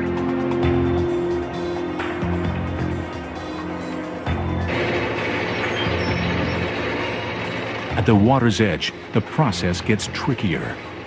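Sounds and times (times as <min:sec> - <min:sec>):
soundtrack music with low tones: 0:00.0 - 0:11.0
steady mechanical noise: 0:00.0 - 0:11.0.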